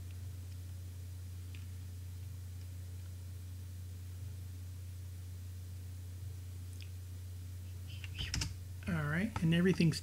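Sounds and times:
low electrical hum: 0.0 - 10.0
computer keyboard keystrokes: 8.0 - 8.6.

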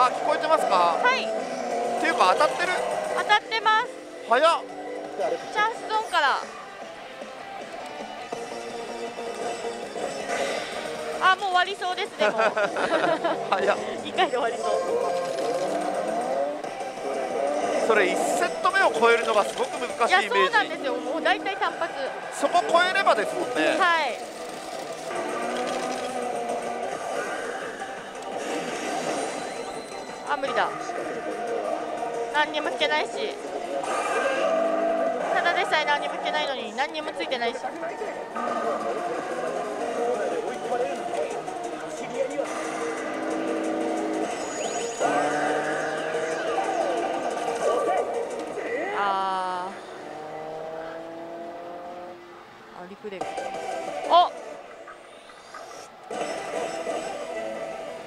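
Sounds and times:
racing car engine revving: 0.0 - 7.1, 7.8 - 58.0
slot machine electronic music: 0.0 - 49.0, 56.1 - 58.0
slot parlour clatter and din: 8.3 - 34.6, 35.2 - 48.5, 56.1 - 57.4.

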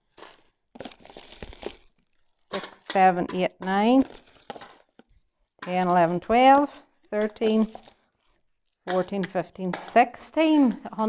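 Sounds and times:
wrapped sweets crinkling: 0.0 - 2.8, 3.9 - 5.6, 6.9 - 8.8.

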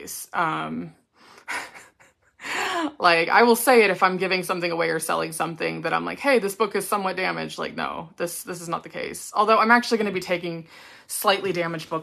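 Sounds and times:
woman speaking: 0.0 - 1.8, 2.5 - 12.0
woman breathing in: 10.7 - 11.1.

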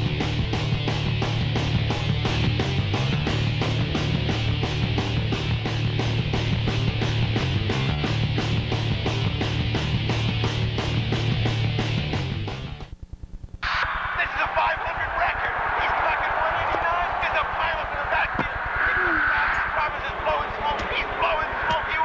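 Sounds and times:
electric guitar rock music: 0.0 - 12.8
low buzz: 12.9 - 22.0
indistinct voices: 13.6 - 22.0.

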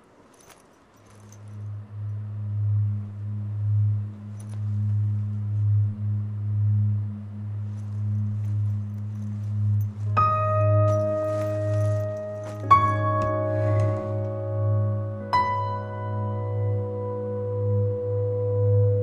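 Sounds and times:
low sustained drone: 1.0 - 19.0.

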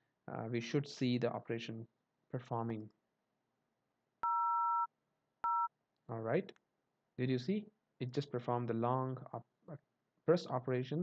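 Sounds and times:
two-tone keypad tone: 4.2 - 5.7.

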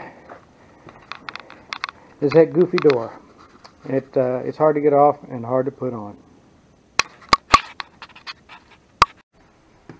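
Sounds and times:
sharp clicks and knocks: 0.9 - 3.8.

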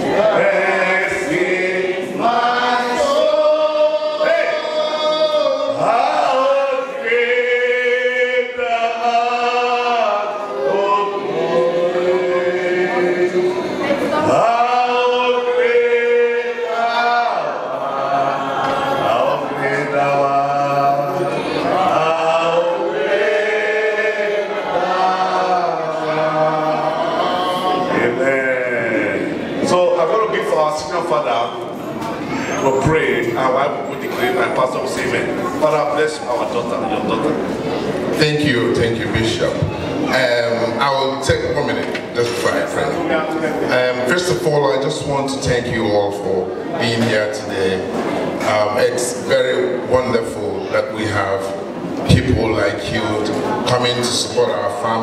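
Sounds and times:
group chanting: 0.0 - 30.0
crowd singing a hymn: 0.0 - 55.0.

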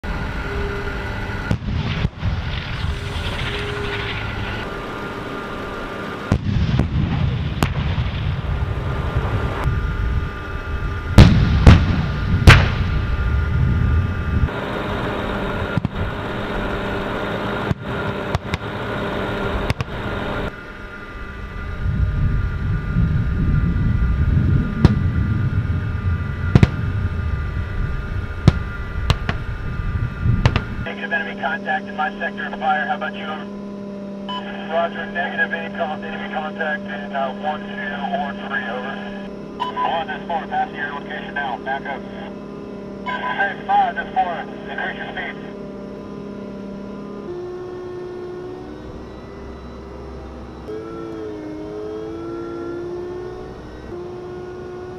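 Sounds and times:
armored vehicle engines rumbling: 0.0 - 54.9
shell explosions: 6.3 - 8.4, 11.2 - 13.0, 26.5 - 26.8
tank cannon shots: 6.3 - 8.4, 11.2 - 13.0.

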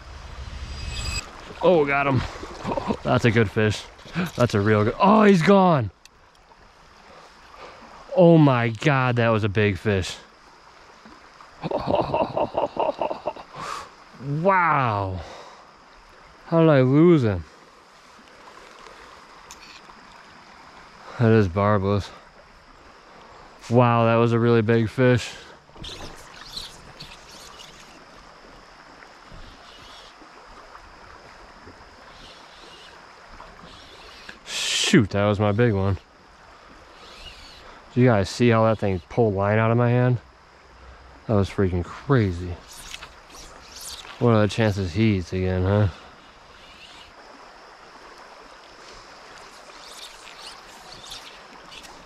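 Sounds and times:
light high sounds: 0.0 - 1.9, 49.4 - 52.0
river water flowing: 0.0 - 52.0
high-pitched tone: 0.3 - 1.3.

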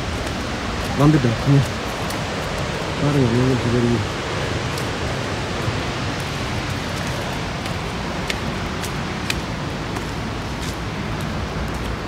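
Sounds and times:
waterfall roaring: 0.0 - 12.0.

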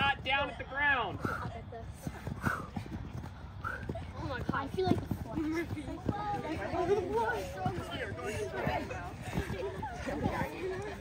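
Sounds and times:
footfalls on artificial turf: 1.0 - 11.0.

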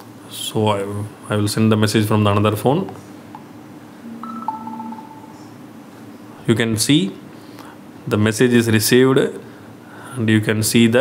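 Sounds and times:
phone notification chime: 4.0 - 5.6.

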